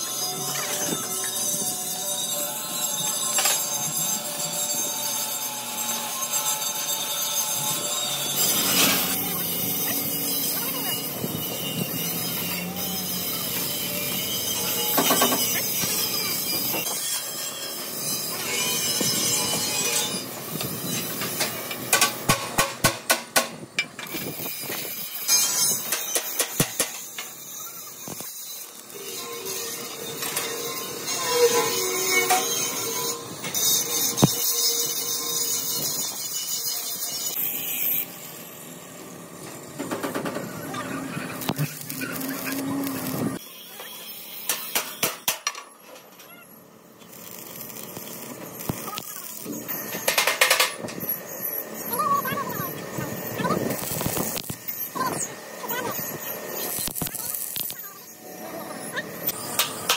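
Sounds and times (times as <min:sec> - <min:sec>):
arc welding crackling hiss: 0:00.0 - 0:59.9.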